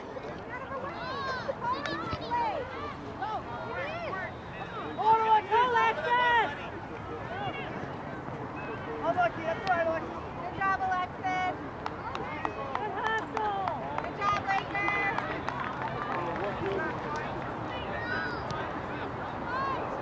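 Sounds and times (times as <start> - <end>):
spectators and players shouting: 0.3 - 20.0.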